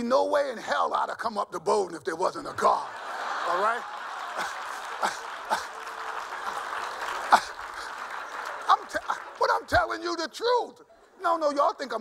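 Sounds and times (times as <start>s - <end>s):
audience laughing: 2.5s - 9.7s
audience applauding: 2.8s - 10.3s.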